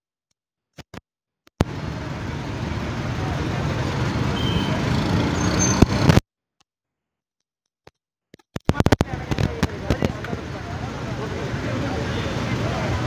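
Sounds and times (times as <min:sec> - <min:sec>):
bus engine running: 0:01.6 - 0:06.2, 0:09.0 - 0:13.0.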